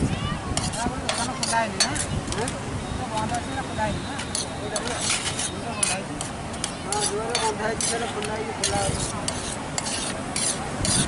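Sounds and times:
metal spatula scraping metal platter: 0:00.6 - 0:02.5, 0:04.2 - 0:11.0.

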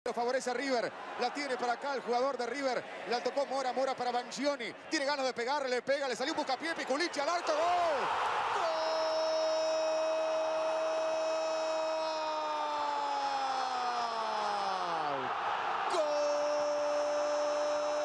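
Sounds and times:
stadium crowd cheering: 0:00.1 - 0:18.0
man shouting drawn-out goal cry: 0:07.4 - 0:18.0.

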